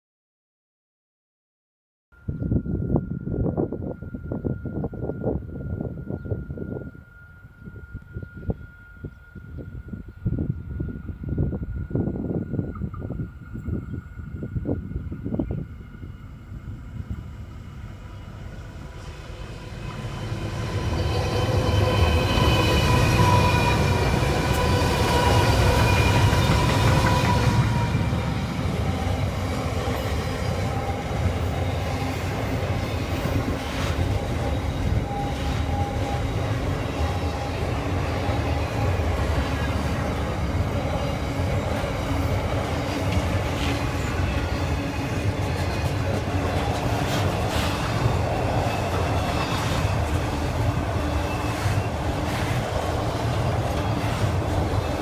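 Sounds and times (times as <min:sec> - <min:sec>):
diesel locomotive engines whining: 0:02.2 - 0:55.0.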